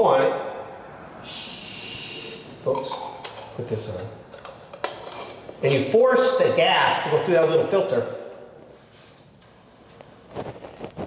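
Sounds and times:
breath blown through filter: 0:01.2 - 0:02.5.

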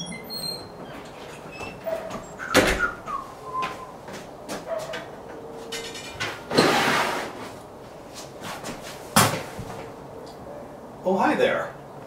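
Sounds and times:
short squeaks: 0:00.0 - 0:03.1
footsteps on concrete floor: 0:00.8 - 0:05.7, 0:07.4 - 0:10.0
plastic tote scraping off shelf: 0:06.5 - 0:07.6.

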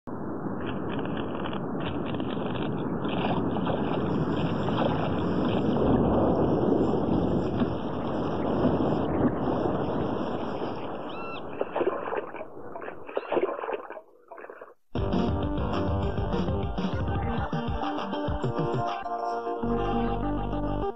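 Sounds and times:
wind: 0:00.0 - 0:19.0
music: 0:15.0 - 0:20.9.

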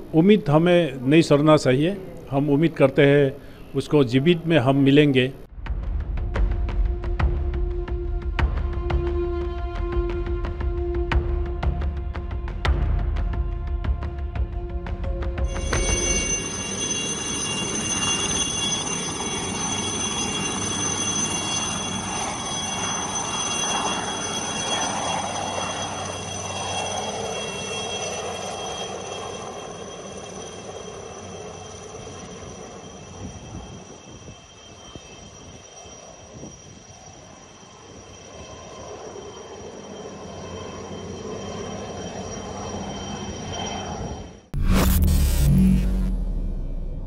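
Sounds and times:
helicopter turbine whine and rotor: 0:00.0 - 0:44.6.

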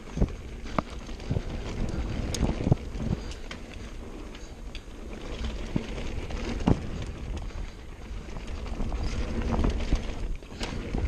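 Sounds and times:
wind on microphone: 0:00.0 - 0:04.2, 0:05.1 - 0:11.0
bike knocking and rattling: 0:00.0 - 0:11.0
bike rolling on dirt trail: 0:00.0 - 0:11.0.

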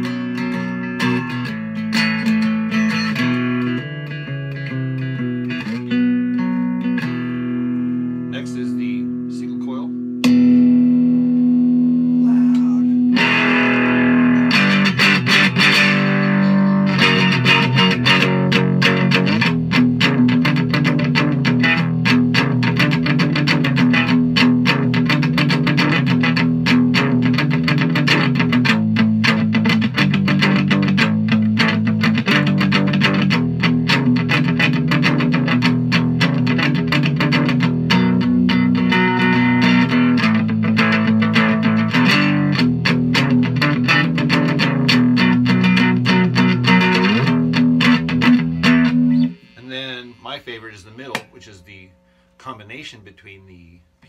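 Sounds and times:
electric guitar blues riff: 0:00.0 - 0:54.0.

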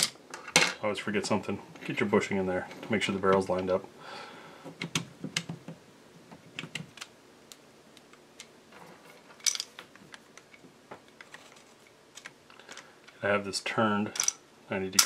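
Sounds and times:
small steel parts clicking: 0:14.2 - 0:14.4.

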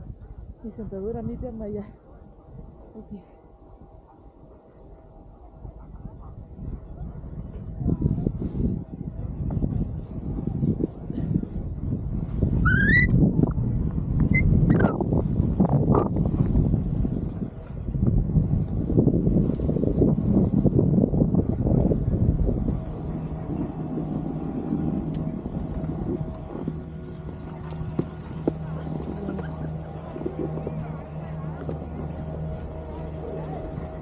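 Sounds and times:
wind rushing over microphone: 0:00.0 - 0:34.0.

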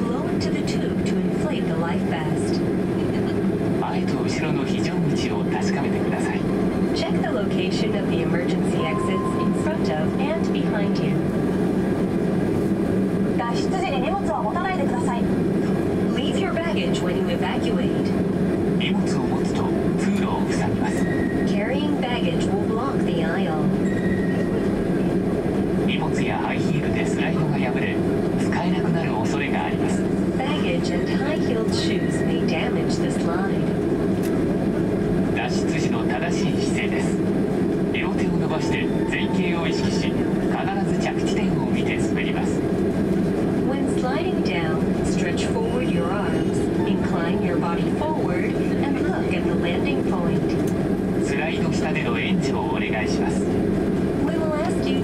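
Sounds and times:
airplane cabin drone: 0:00.0 - 0:55.0
person talking: 0:30.4 - 0:33.6.

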